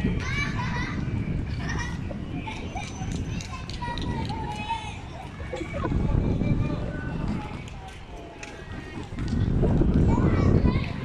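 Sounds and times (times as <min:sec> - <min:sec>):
steady low rumble: 0:00.0 - 0:07.9.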